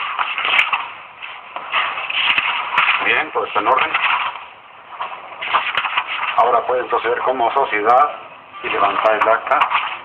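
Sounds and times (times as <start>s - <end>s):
paper sheets rustling: 0.0s - 4.4s, 5.0s - 6.6s.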